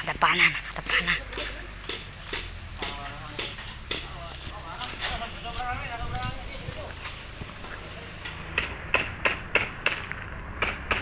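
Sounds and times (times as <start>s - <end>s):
sharp knocks: 8.5s - 11.0s.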